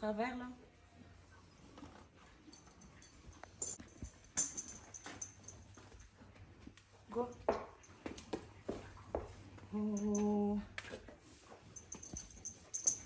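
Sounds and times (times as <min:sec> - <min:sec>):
metallic clinks of tack: 0:02.4 - 0:06.2, 0:11.6 - 0:13.0.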